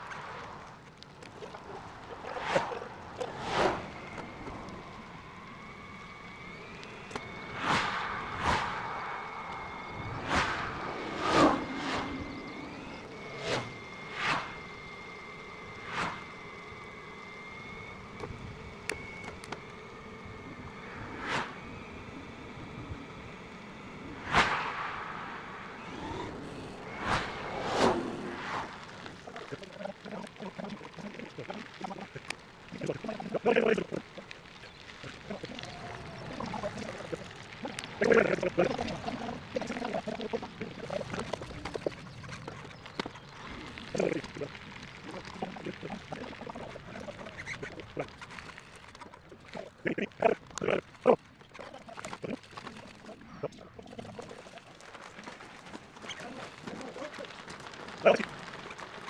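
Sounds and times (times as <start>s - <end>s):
steady high whine: 0.0s - 55.9s
short sharp swells of sound: 24.2s - 28.9s.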